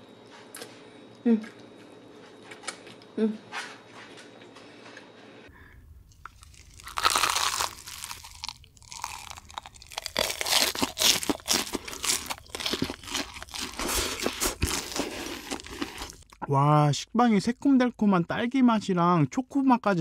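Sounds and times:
person chewing crunchy food: 6.1s - 16.4s.

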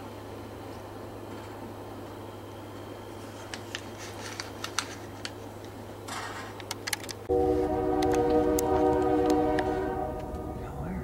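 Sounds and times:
locomotive air horn chord: 7.3s - 11.0s.

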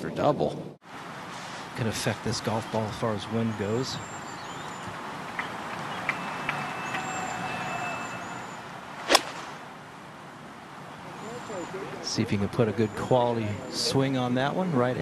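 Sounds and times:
faint high chirps: 2.8s - 8.7s
golf club striking ball: 9.0s - 9.6s.

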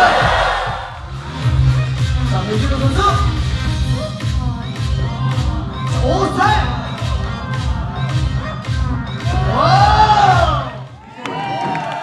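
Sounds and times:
crowd cheering: 0.0s - 1.0s, 9.2s - 12.0s
music with heavy bass beat: 0.0s - 11.0s.

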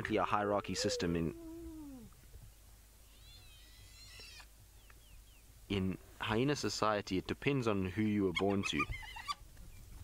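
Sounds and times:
faint high-pitched animal call: 0.4s - 2.1s, 3.1s - 4.5s.

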